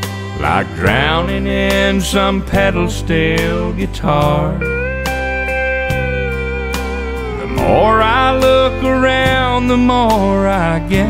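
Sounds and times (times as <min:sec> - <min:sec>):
pedal steel guitar: 0:00.0 - 0:11.0.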